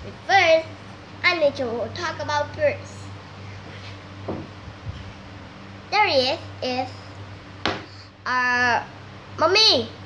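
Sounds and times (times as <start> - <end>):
steady low hum: 0.0 - 10.0
girl speaking sing-song: 0.1 - 3.2, 5.9 - 7.0.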